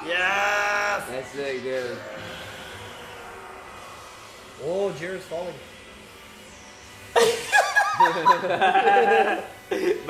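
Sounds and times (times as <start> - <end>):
rushing sound effect: 1.0 - 6.7.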